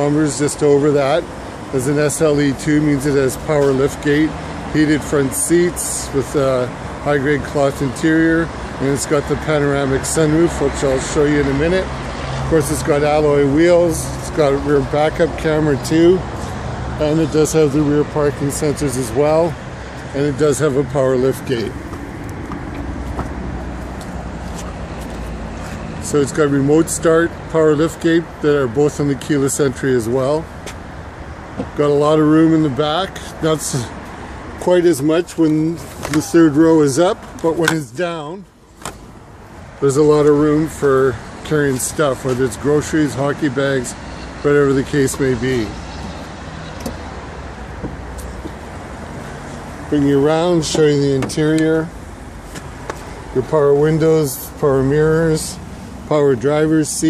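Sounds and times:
traffic rumble: 0:00.0 - 0:57.0.

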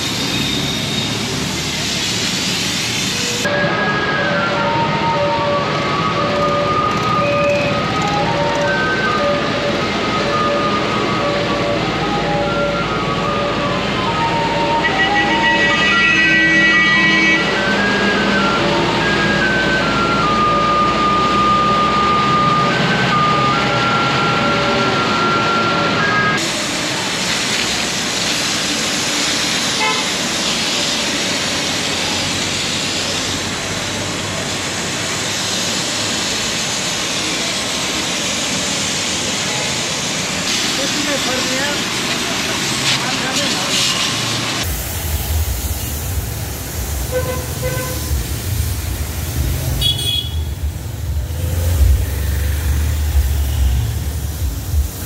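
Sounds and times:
hose jet spraying water on pavement: 0:00.0 - 0:21.1, 0:26.4 - 0:55.0.

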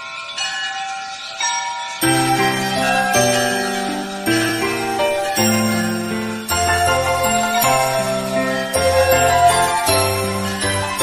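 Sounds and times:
bell chimes ringing: 0:00.0 - 0:11.0.

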